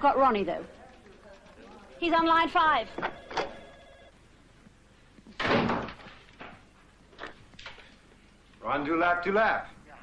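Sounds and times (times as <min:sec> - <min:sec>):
door slamming: 0:05.4 - 0:06.6.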